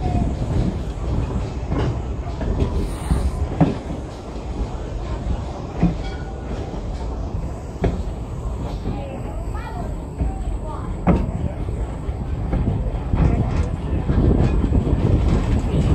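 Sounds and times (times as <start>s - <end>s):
train rumbling: 0.0s - 15.9s.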